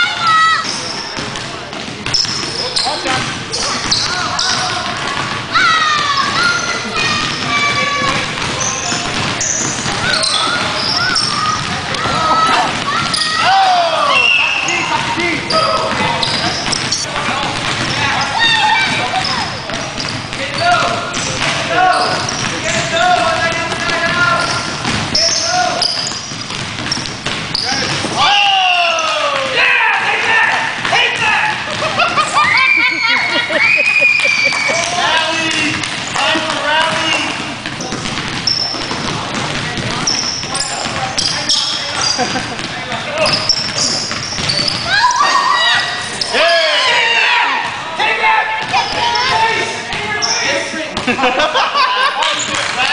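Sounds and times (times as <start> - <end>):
players calling out: 0.0 - 52.9
sneakers squeaking: 0.0 - 52.9
voices in echoing gym: 0.0 - 52.9
basketball bouncing on hardwood: 1.2 - 13.2, 15.0 - 21.6, 22.2 - 25.3, 25.9 - 28.2, 35.5 - 41.1, 42.2 - 44.9.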